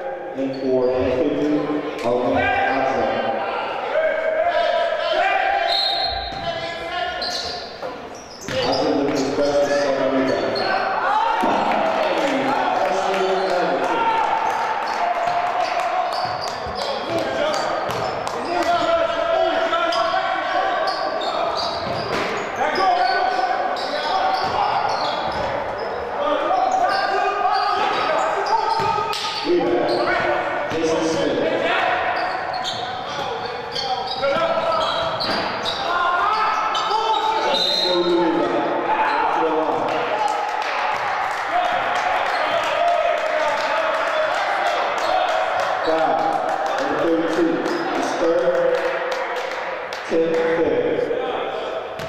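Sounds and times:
players and coaches calling out: 0.0s - 52.0s
basketball bouncing on wooden court: 16.1s - 18.4s, 21.7s - 22.4s.

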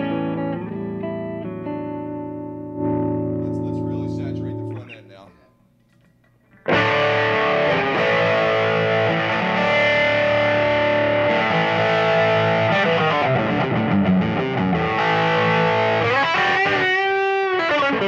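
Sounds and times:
overdriven electric guitar: 0.0s - 5.5s, 6.5s - 18.0s.

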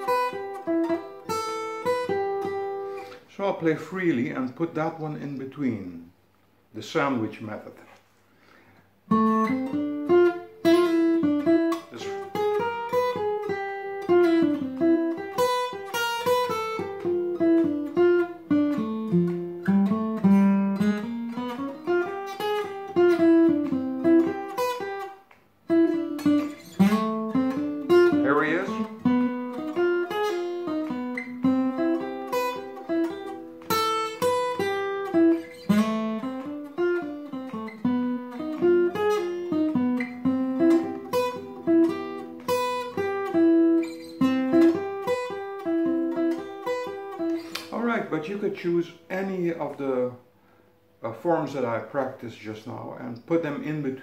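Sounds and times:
acoustic guitar jazz single-note line: 0.0s - 6.2s, 9.1s - 54.0s.

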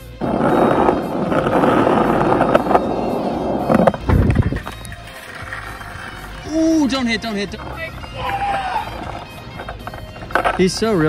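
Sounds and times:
skateboard wheels rolling on pavement: 0.0s - 11.0s.

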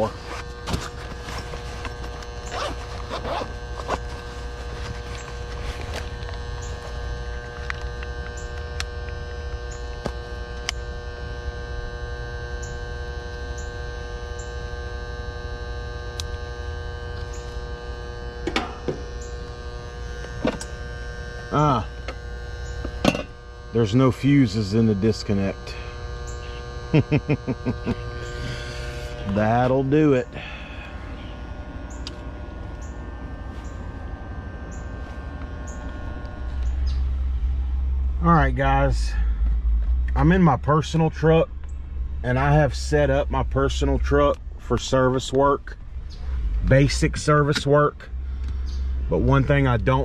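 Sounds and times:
contactor humming: 0.0s - 50.0s.

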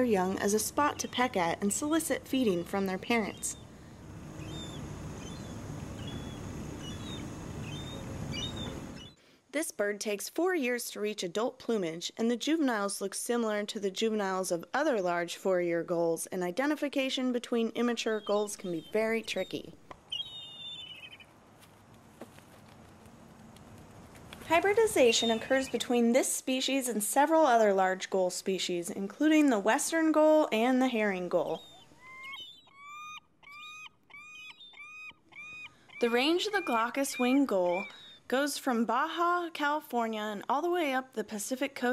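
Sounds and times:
steady low rumble: 0.0s - 9.0s
gull calling: 0.0s - 9.1s, 18.0s - 21.4s, 24.5s - 25.8s, 31.5s - 38.3s
faint high bird chirps: 0.5s - 3.8s, 4.4s - 9.2s, 18.0s - 21.3s, 24.9s - 25.8s, 31.4s - 38.3s.

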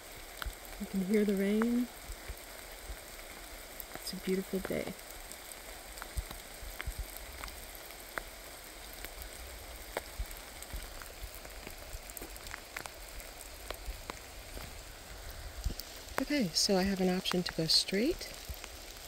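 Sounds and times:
steady rain: 0.0s - 19.0s.

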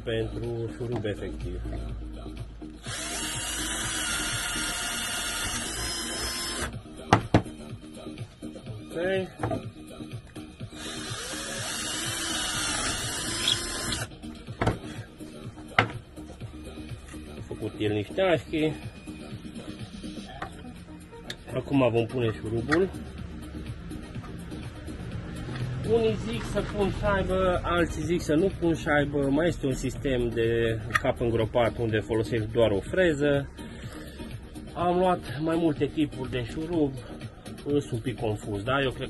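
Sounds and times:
cordless drill boring into wood: 2.8s - 6.7s, 10.7s - 14.1s.

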